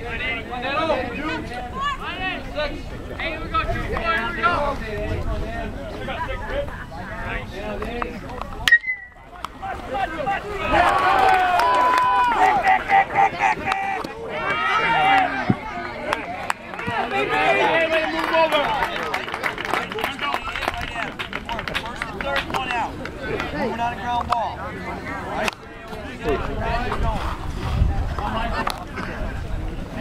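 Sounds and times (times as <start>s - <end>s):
metal bat hitting ball: 8.6s - 9.2s
crowd shouting and cheering: 8.6s - 27.2s.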